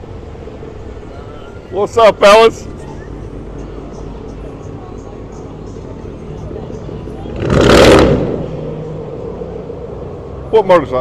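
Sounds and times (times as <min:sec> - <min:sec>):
truck engine rumbling: 0:00.0 - 0:11.0
exhaust roar accelerating: 0:07.2 - 0:11.0.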